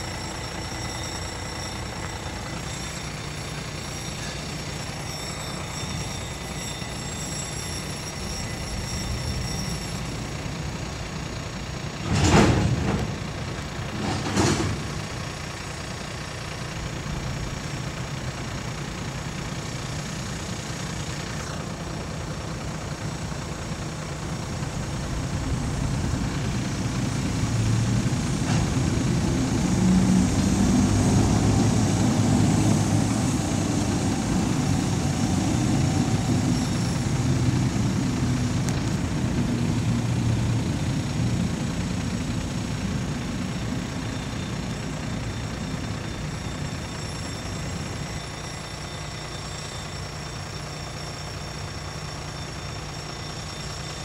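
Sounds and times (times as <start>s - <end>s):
diesel locomotive engine: 0.0s - 54.0s.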